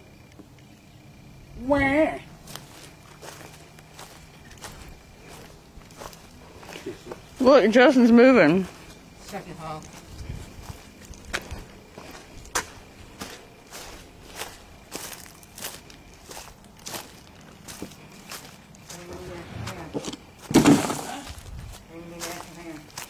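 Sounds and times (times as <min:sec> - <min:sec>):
footsteps on dry leaves: 0:02.4 - 0:07.5, 0:08.6 - 0:23.0.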